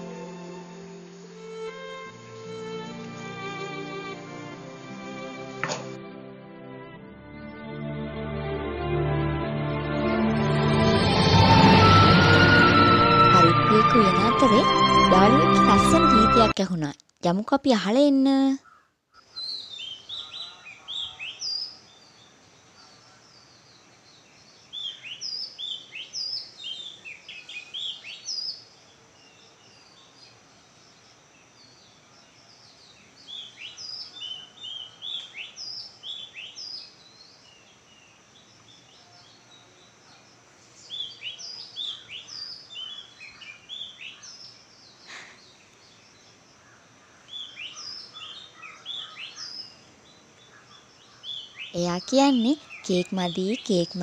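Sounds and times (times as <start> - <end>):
birds chirping: 11.7 - 54.0.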